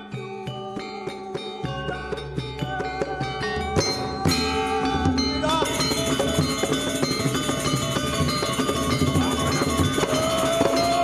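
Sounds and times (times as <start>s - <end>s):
metallophones and gong-chimes ringing: 0.0s - 11.0s.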